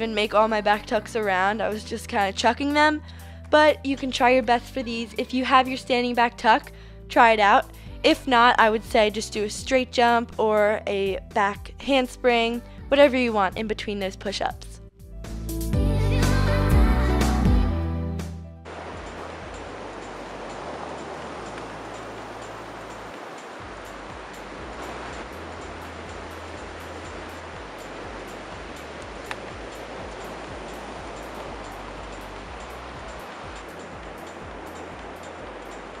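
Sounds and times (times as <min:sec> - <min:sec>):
background music: 0:00.0 - 0:36.0
ocean surf breaking: 0:18.7 - 0:36.0.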